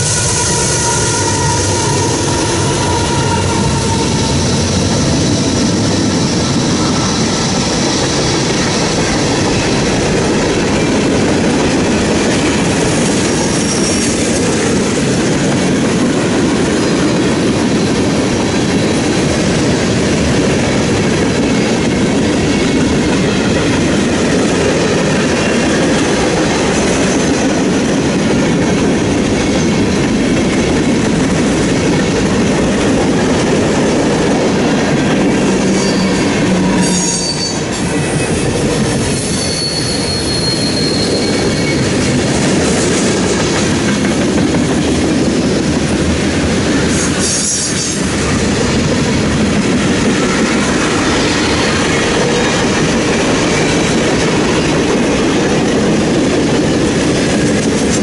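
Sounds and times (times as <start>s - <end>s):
high squeal of wheels: 0.0s - 8.1s, 13.4s - 14.2s, 35.6s - 38.4s, 39.0s - 42.0s, 46.9s - 48.0s
freight train wheels rumbling: 0.0s - 58.0s.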